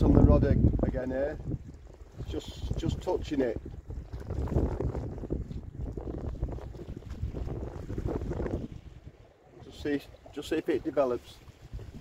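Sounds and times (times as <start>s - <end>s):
sea washing around rocks: 0.0s - 12.0s
wind buffeting microphone: 0.0s - 12.0s.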